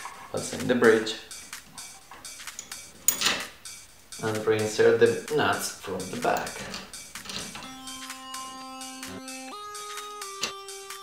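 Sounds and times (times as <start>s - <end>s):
metal plate and screws clicking: 1.8s - 3.5s, 6.2s - 7.6s.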